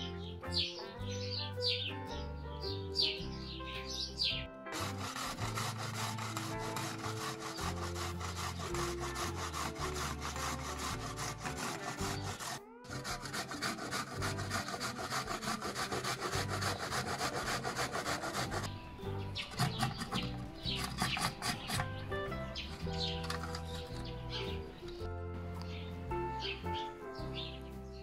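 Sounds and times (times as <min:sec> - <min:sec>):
background music with bass: 0:00.0 - 0:28.0
carrot grating on box grater: 0:04.8 - 0:18.7, 0:19.4 - 0:24.1.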